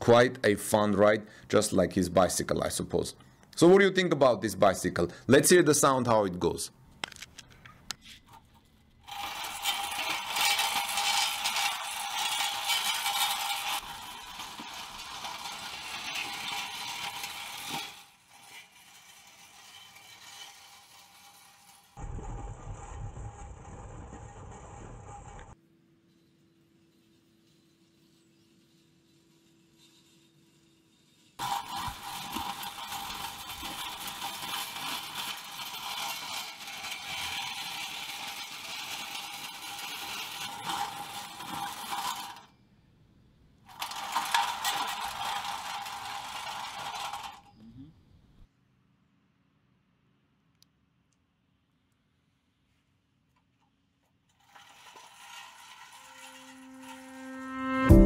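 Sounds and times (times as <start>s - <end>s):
bicycle tread rattling and scraping: 7.0s - 42.6s, 43.6s - 47.6s, 53.4s - 58.0s.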